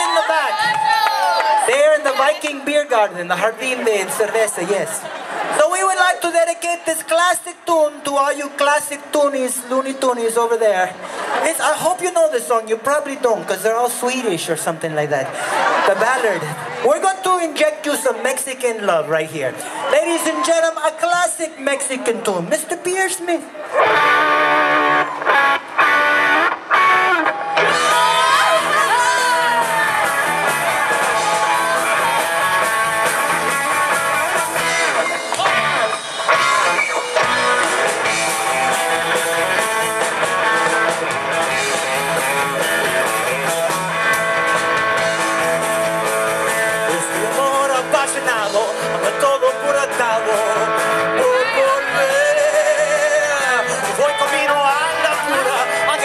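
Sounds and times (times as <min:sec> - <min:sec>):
live rock band playing: 0:23.7 - 0:56.0.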